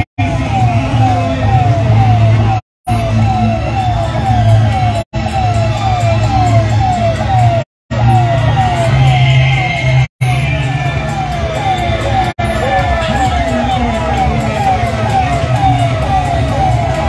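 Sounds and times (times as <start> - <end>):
electronic siren wailing: 0.0 - 17.0.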